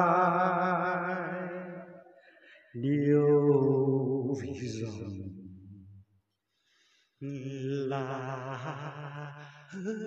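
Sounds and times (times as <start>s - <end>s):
man singing unaccompanied: 0.0s - 2.0s, 2.8s - 5.4s, 7.2s - 10.0s.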